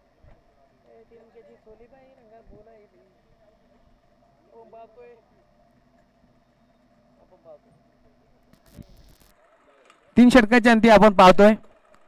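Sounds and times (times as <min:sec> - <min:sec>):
faint outdoor ambience: 0:00.0 - 0:12.0.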